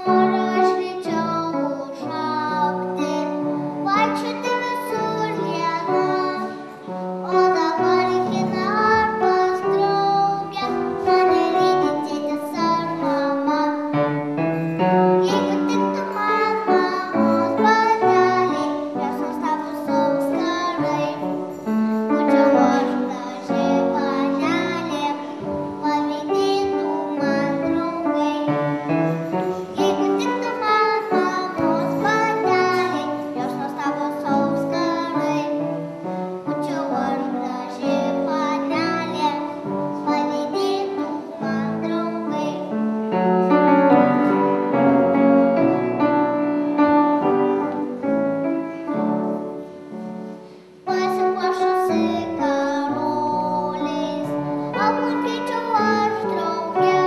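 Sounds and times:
girl singing: 0.0 - 57.0
grand piano: 0.0 - 57.0.

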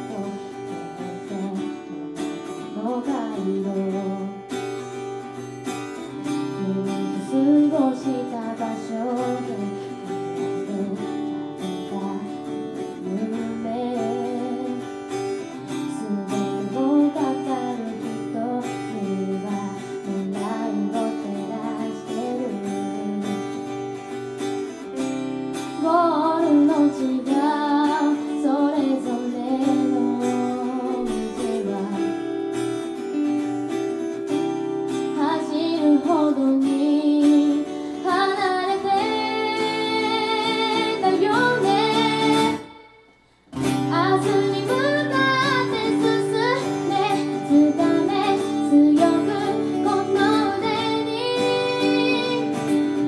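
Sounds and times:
woman singing: 0.0 - 24.2, 24.9 - 33.1, 34.3 - 53.0
acoustic guitars strummed and picked: 0.0 - 53.0.

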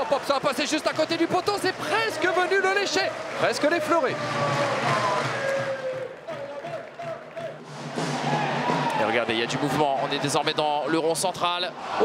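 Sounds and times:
stadium crowd hubbub: 0.0 - 12.0.

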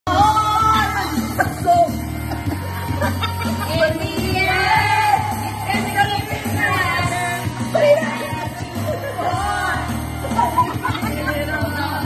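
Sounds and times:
loud backing track: 0.1 - 12.0
woman singing karaoke: 0.1 - 12.0.

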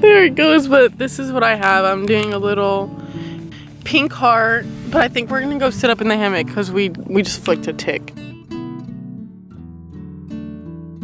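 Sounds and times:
plucked acoustic guitar: 0.0 - 11.0.

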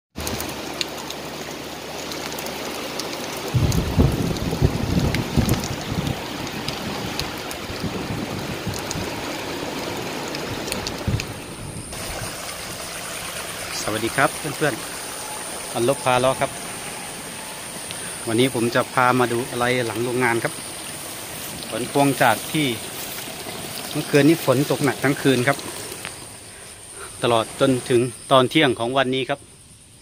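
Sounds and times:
heavy rain on metal roofs: 0.2 - 27.9.

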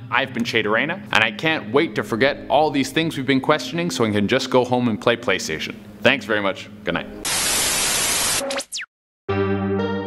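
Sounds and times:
white-noise static hiss: 5.1 - 8.4
falling electronic whine: 7.2 - 8.9.

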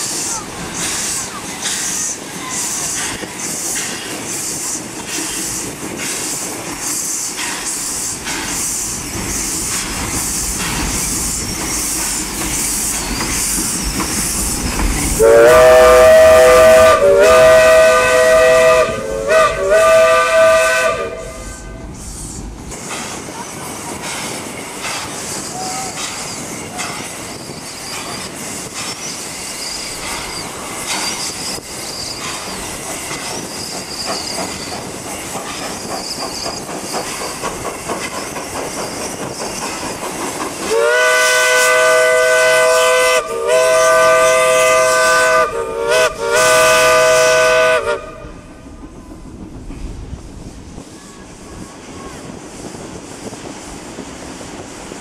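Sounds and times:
steam engine hissing and rattling: 0.0 - 55.0
steam whistle blasts: 15.2 - 21.8, 40.7 - 48.5.

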